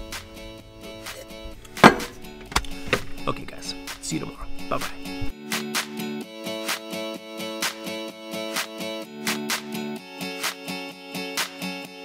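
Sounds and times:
background guitar music: 0.0 - 12.0
cup set down on counter: 1.8 - 2.2.

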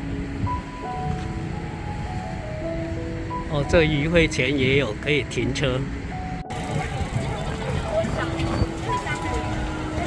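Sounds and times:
low traffic rumble: 0.0 - 10.0
people chattering: 6.5 - 10.0.

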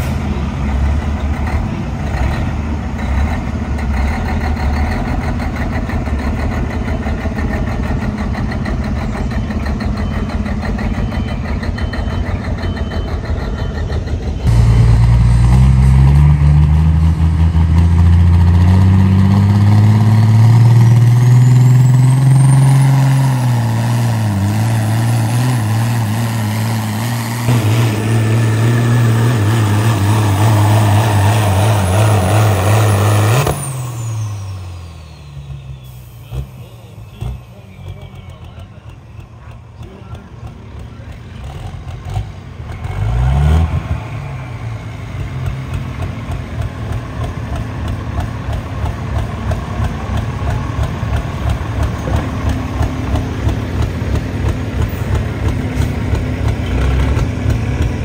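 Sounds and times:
diesel truck engine revving: 0.0 - 58.0.

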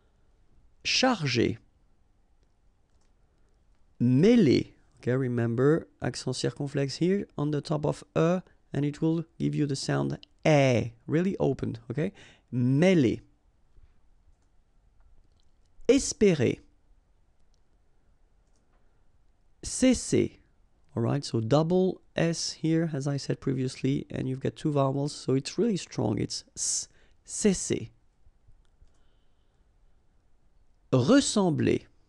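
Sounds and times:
man speaking: 0.8 - 1.7, 4.0 - 13.3, 15.8 - 16.7, 19.6 - 28.0, 30.9 - 32.0
faint clicks: 2.4 - 3.9, 13.7 - 15.8, 18.4 - 19.4, 28.1 - 29.1.

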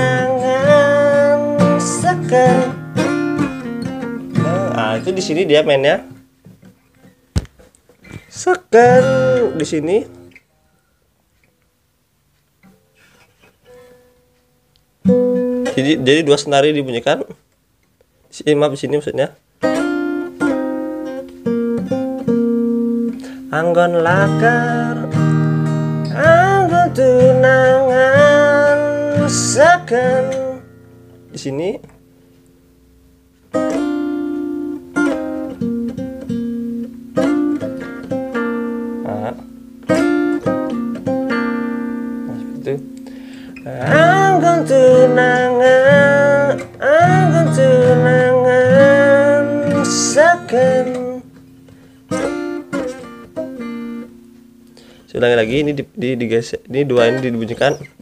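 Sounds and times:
plucked acoustic guitar notes: 0.0 - 10.5, 12.6 - 16.5, 19.6 - 58.0.

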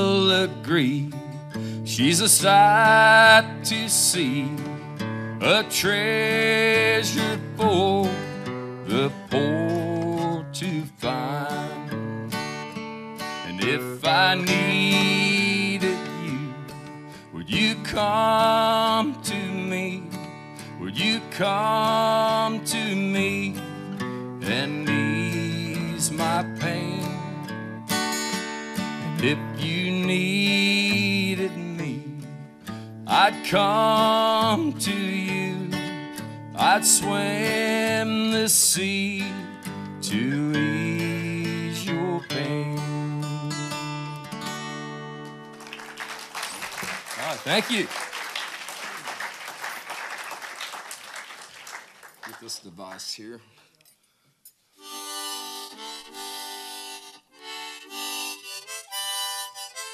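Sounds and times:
acoustic guitar playing: 0.0 - 47.9, 54.8 - 59.9.

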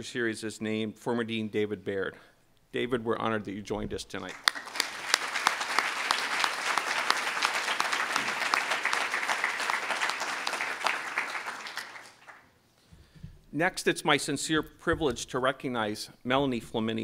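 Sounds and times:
audience applauding: 4.3 - 12.5.

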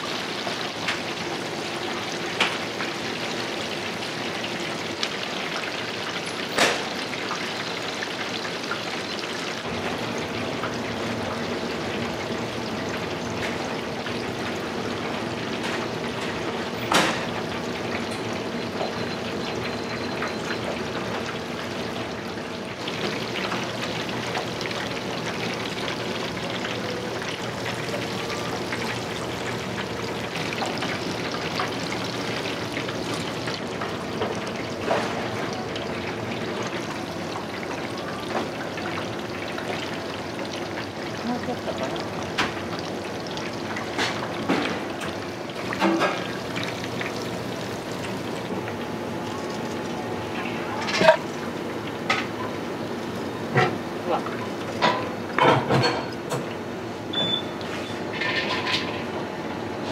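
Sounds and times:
oil sizzling in a deep fryer: 0.0 - 59.9.

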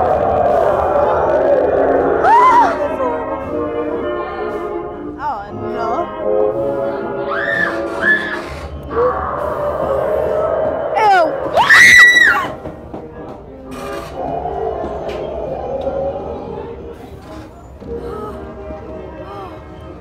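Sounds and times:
eerie music and effects: 0.0 - 5.1, 6.1 - 12.7, 13.6 - 20.0
loud high scream: 2.2 - 2.8, 7.3 - 9.6, 11.5 - 12.5.

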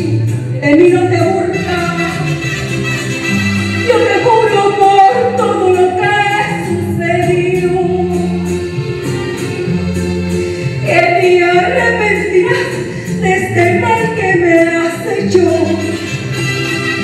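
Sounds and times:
backing music with bass line: 0.0 - 17.0.

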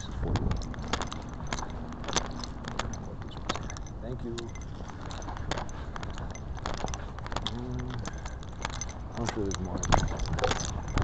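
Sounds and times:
light jingling rattle: 0.0 - 11.0.

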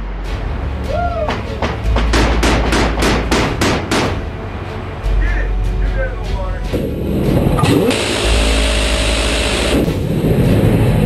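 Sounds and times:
sharp gunshots: 2.1 - 4.2
loud steady roar: 6.8 - 11.0.

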